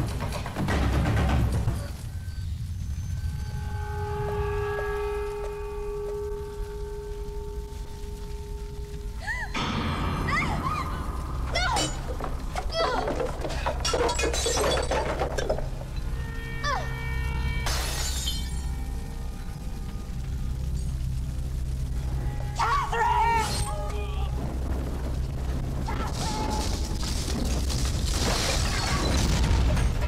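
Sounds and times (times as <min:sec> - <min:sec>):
sustained dramatic music note: 0:03.1 - 0:12.6
glass and objects shattering: 0:11.4 - 0:16.1, 0:17.6 - 0:18.8, 0:25.9 - 0:30.0.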